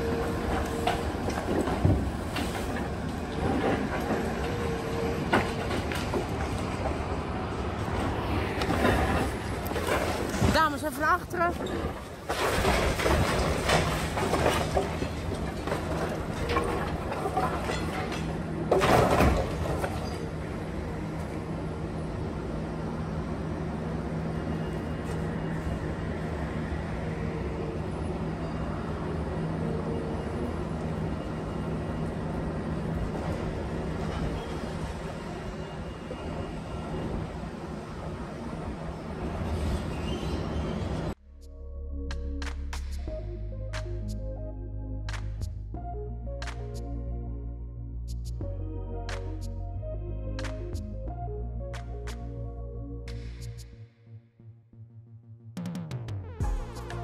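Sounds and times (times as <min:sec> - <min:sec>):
excavator engine and hydraulics: 0:00.0 - 0:54.0.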